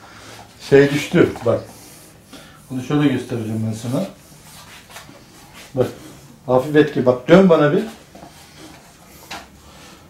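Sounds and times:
cloth rubbing and rustling: 0.2 - 10.0.

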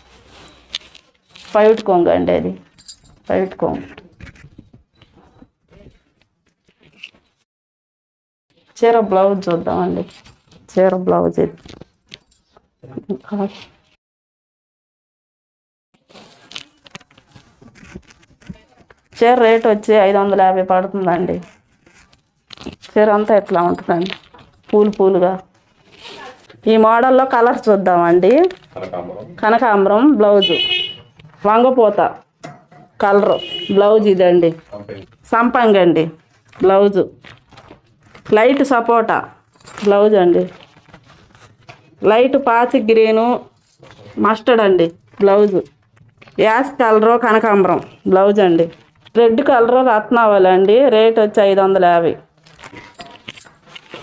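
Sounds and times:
woman speaking: 1.5 - 4.0, 8.8 - 11.7, 12.9 - 13.6, 18.5 - 21.5, 22.9 - 25.4, 26.0 - 28.6, 29.4 - 30.7, 31.4 - 32.2, 33.0 - 34.6, 35.3 - 37.2, 38.3 - 40.6, 42.0 - 43.5, 44.2 - 45.7, 46.4 - 52.3
bangles jingling: 2.7 - 3.6, 10.1 - 11.1, 21.9 - 24.7, 39.4 - 41.5, 52.4 - 54.0
fabric rustling: 16.1 - 20.2, 39.5 - 42.3.

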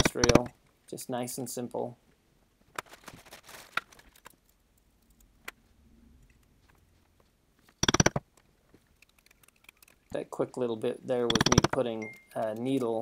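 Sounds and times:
soft rustling: 2.5 - 4.6, 5.6 - 7.7.

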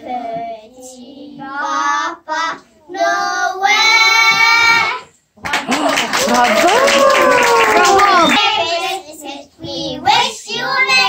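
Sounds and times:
young children singing: 0.0 - 5.2, 7.8 - 11.0
people clapping: 5.4 - 8.6.

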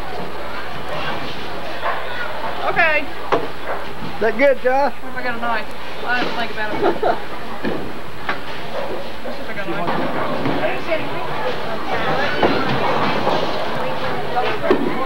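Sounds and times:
people talking and laughing: 0.0 - 15.0.

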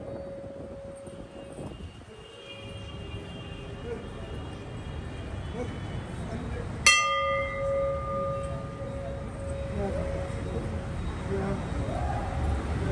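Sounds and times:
murmur of voices: 5.5 - 12.9
brass bell ringing: 6.8 - 11.0.

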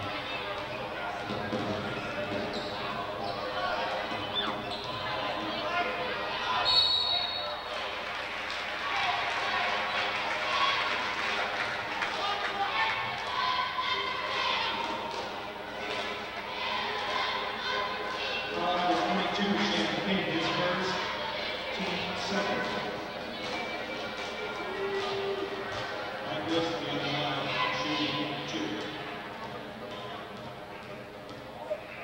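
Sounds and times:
crowd voices and chatter: 0.0 - 32.0
referee's whistle: 6.6 - 7.6.

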